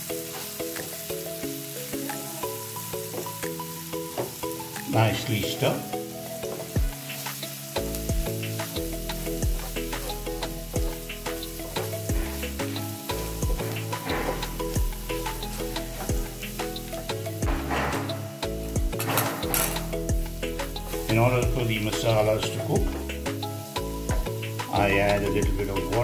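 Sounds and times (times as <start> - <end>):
onions sizzling in oil: 0.0 - 26.0
spatula scraping pan: 9.2 - 18.4.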